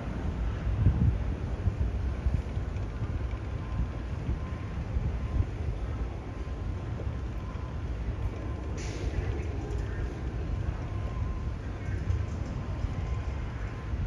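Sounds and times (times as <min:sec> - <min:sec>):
wind buffeting microphone: 0:00.0 - 0:14.0.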